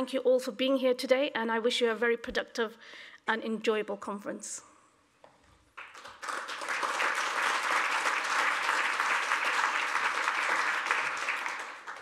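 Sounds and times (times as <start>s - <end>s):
audience applause: 5.8s - 12.0s.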